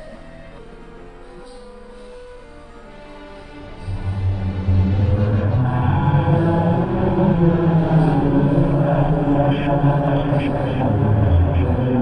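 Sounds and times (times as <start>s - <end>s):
low chant-like drone: 0.0s - 12.0s.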